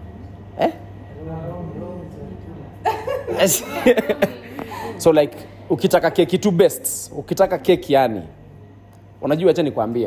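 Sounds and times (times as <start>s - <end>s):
quiet talking: 0.0s - 9.5s
steady low hum: 0.0s - 10.0s.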